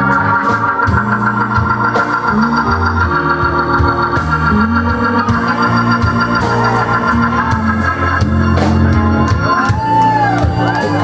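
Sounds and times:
drums: 0.0 - 11.0
organ sustained chords: 0.0 - 11.0
walking bass line: 0.0 - 11.0.

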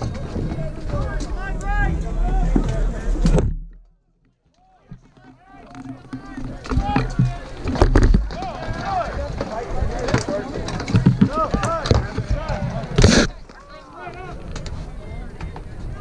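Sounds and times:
loud thump: 2.4 - 3.9
many voices shouting: 8.3 - 10.7.

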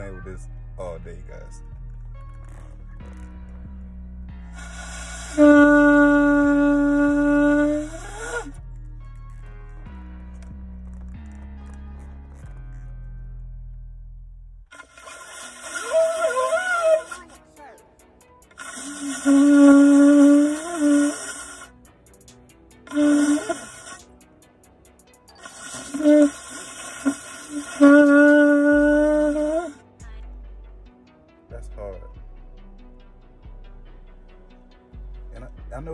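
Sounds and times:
breathy hiss: 4.5 - 8.6, 14.7 - 17.5, 18.4 - 24.2, 25.3 - 29.8
shofar blasts: 4.6 - 8.6, 15.7 - 17.3, 18.8 - 21.6, 22.9 - 24.0, 25.9 - 29.8.

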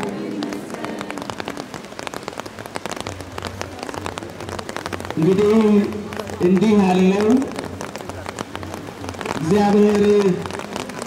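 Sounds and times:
rain pattering: 0.0 - 11.0.

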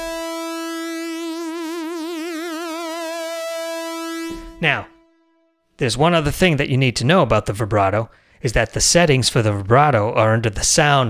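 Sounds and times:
synthesizer lead with vibrato: 0.0 - 5.7.

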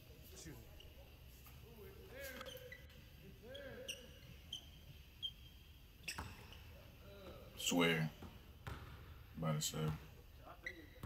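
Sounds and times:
basketball shoes squeaking: 2.2 - 7.3, 7.9 - 9.2, 9.8 - 11.0
basketball bounce: 8.2 - 9.0.

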